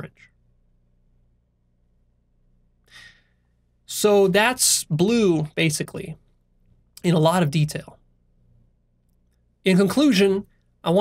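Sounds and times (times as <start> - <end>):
man speaking: 0.0 - 0.3, 3.8 - 6.2, 7.0 - 8.0, 9.6 - 11.0
man breathing in: 2.8 - 3.6.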